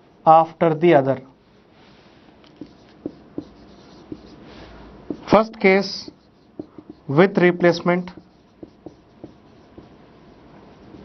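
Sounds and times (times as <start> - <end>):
marker writing on whiteboard: 2.5 - 11.0.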